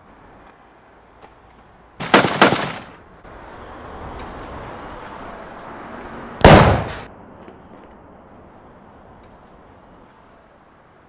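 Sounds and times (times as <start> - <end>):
gunshots with echo: 2.0 - 3.0, 6.4 - 7.1.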